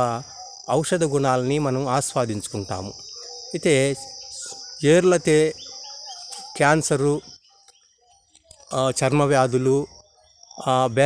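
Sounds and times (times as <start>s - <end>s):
man speaking: 0.0s - 5.8s, 6.4s - 7.3s, 8.6s - 10.0s, 10.6s - 11.0s
insects buzzing: 0.0s - 11.0s.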